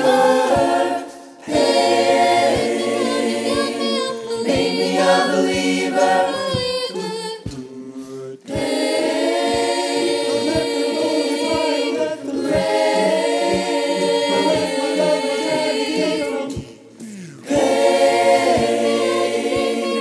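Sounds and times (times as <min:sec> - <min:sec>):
choir singing a cappella: 0:00.0 - 0:20.0
low beat: 0:00.0 - 0:20.0.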